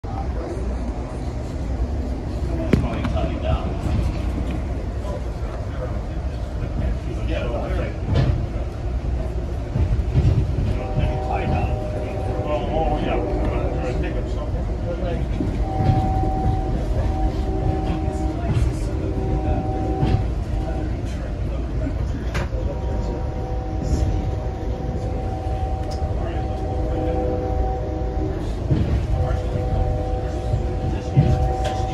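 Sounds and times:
train rumbling from inside: 0.0 - 31.9.

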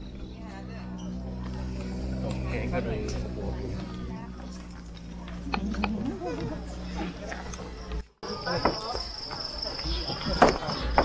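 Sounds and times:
high-pitched insect buzz: 0.0 - 7.6.

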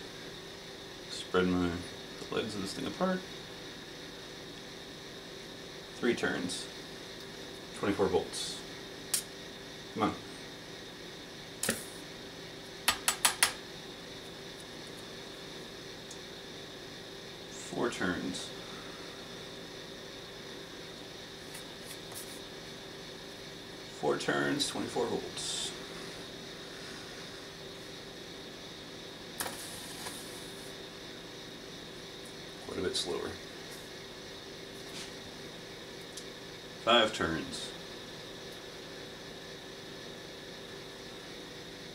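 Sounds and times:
primer igniting with sharp hiss: 0.0 - 41.1
steady background hum: 0.0 - 41.9
sharp snap and hissing fizz: 9.1 - 9.4, 11.6 - 12.0, 29.4 - 30.7.

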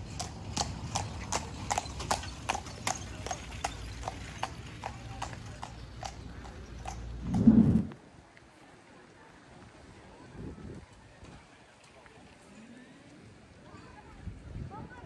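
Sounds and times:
hooves clip-clopping on cobblestones: 0.0 - 7.6.

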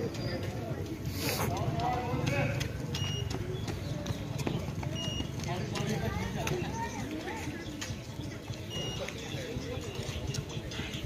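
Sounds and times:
running footsteps on asphalt: 0.0 - 11.0.

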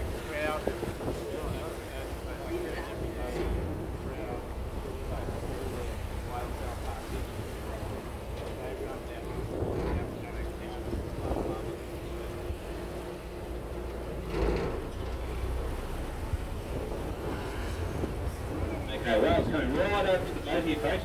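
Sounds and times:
boat rumbling: 0.0 - 21.0
faint voices: 0.0 - 21.0
wind on microphone: 0.0 - 21.0.

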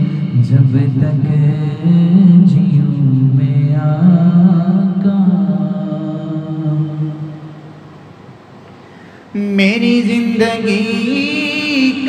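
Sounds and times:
man singing into a microphone: 0.0 - 7.5, 9.3 - 12.0.

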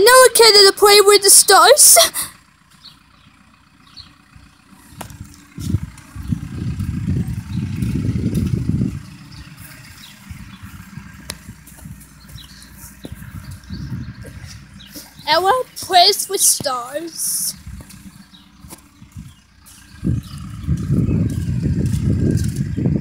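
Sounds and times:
wind rumbling on microphone: 4.8 - 15.4, 17.4 - 23.0.

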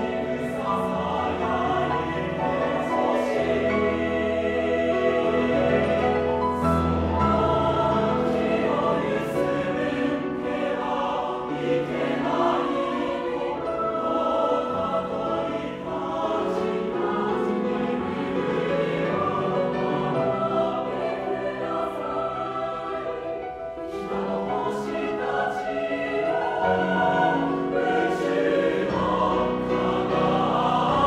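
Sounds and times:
mixed choir singing: 0.0 - 31.0.

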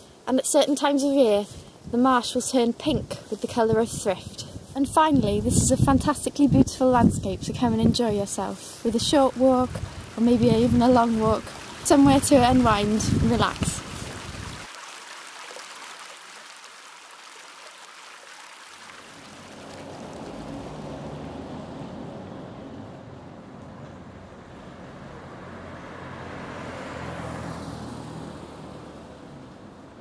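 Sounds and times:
cars passing: 7.9 - 14.7, 18.9 - 30.0.

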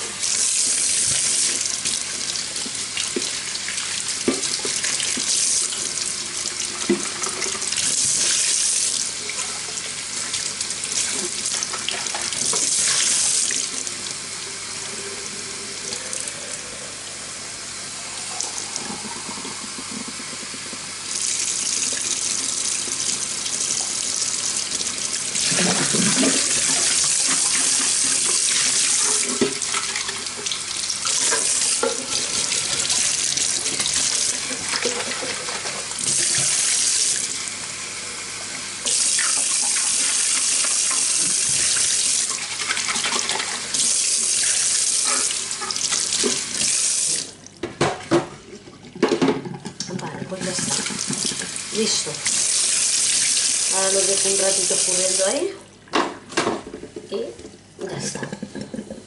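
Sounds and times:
tap water running into sink: 0.0 - 15.0, 18.2 - 37.6, 38.4 - 58.9.

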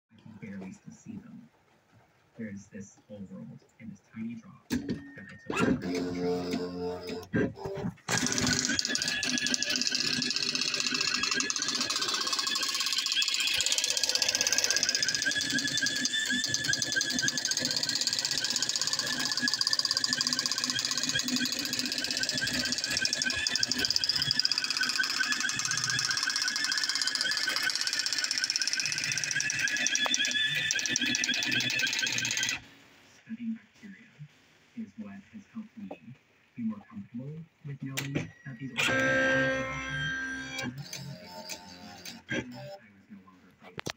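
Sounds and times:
daisy wheel printer clattering: 5.9 - 32.6.

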